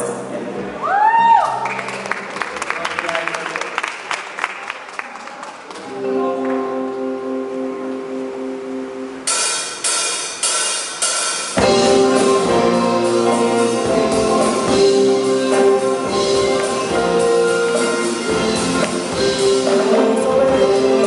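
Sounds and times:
rock band playing: 0:05.8 - 0:21.0
electric guitar chord: 0:05.9 - 0:09.7, 0:11.6 - 0:21.0
drum kit hits with cymbal: 0:09.3 - 0:21.0.

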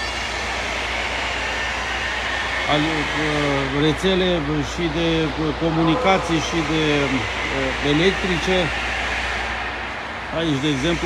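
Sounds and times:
machinery humming in a tunnel: 0:00.0 - 0:11.0.

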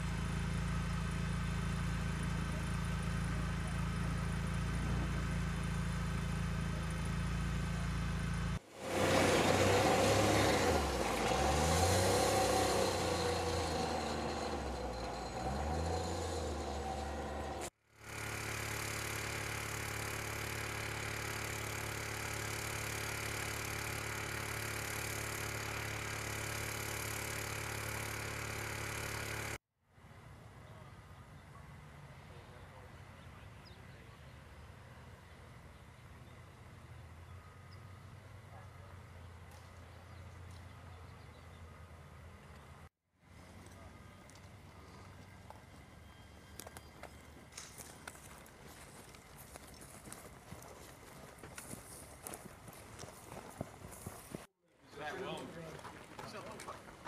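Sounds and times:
vehicle engine running: 0:00.0 - 0:57.0.

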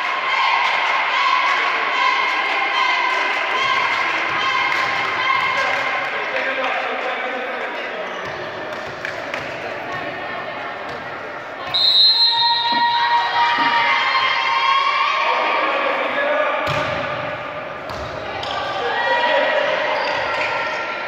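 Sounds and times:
voices shouting in a hall: 0:00.0 - 0:08.6, 0:09.4 - 0:21.0
volleyball hits: 0:16.6 - 0:18.8.

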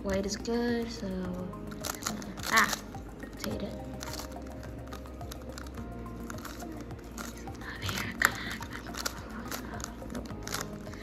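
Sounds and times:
background music: 0:00.0 - 0:11.0
puzzle pieces clicking: 0:01.6 - 0:11.0.

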